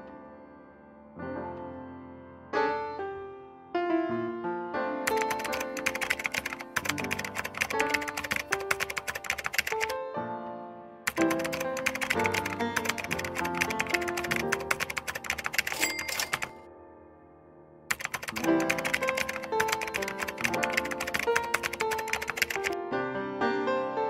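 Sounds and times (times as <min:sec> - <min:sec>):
light piano music: 0:00.0 - 0:24.0
keyboard typing clicks: 0:05.1 - 0:10.0, 0:11.1 - 0:16.6, 0:17.9 - 0:22.8.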